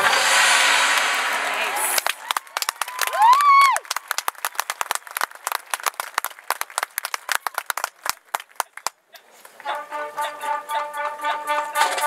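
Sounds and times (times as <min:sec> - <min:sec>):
spectator cheering: 0:01.7 - 0:03.9
audience applauding: 0:02.0 - 0:09.0.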